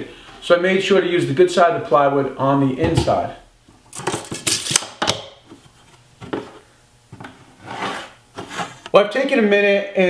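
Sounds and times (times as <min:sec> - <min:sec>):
pencil scraping strokes: 0:07.6 - 0:08.8.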